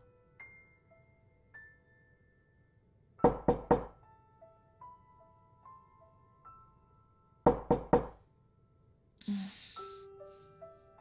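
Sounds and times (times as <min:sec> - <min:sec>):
knocks on a door: 0:03.2 - 0:04.0, 0:07.4 - 0:08.2.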